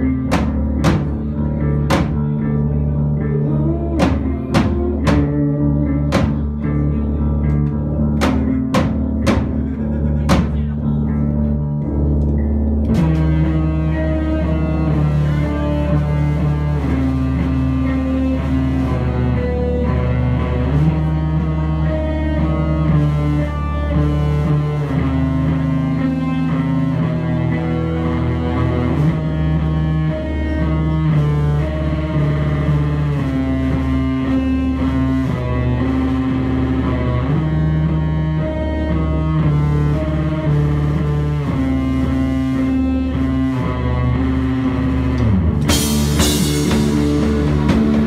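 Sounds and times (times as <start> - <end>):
live band playing: 0.0 - 48.0.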